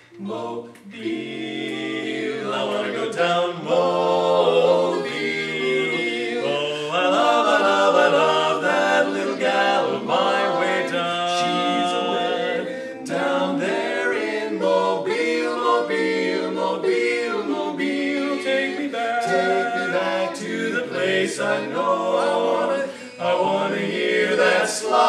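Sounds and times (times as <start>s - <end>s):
male quartet singing a cappella: 0.0s - 25.0s.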